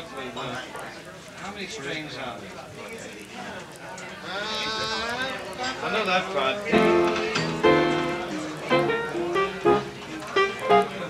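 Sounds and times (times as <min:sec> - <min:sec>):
musicians talking: 0:03.2 - 0:11.0
instrument notes: 0:06.7 - 0:11.0.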